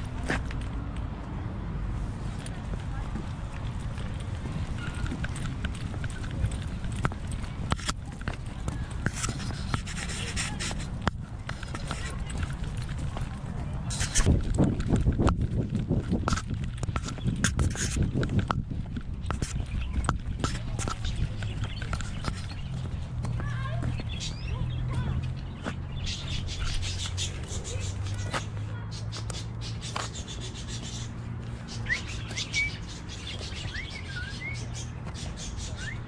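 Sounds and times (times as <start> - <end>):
wind and movement rumble: 0.0 - 36.0
camera rubbing: 8.9 - 12.9, 13.8 - 22.9
small birds chirping: 11.6 - 36.0.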